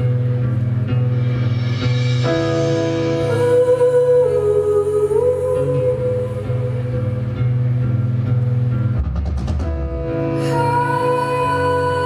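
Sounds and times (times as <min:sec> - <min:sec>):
electric guitar chords: 0:00.0 - 0:12.0
woman singing long wordless note: 0:03.2 - 0:07.4, 0:10.4 - 0:12.0.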